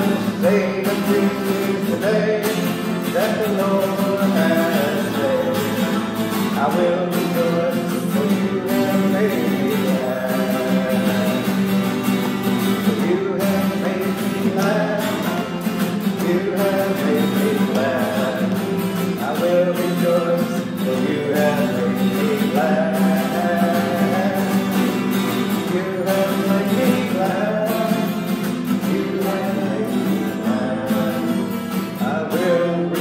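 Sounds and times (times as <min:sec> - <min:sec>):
man singing gospel song: 0:00.0 - 0:12.0, 0:12.6 - 0:33.0
acoustic guitar strumming: 0:00.0 - 0:33.0.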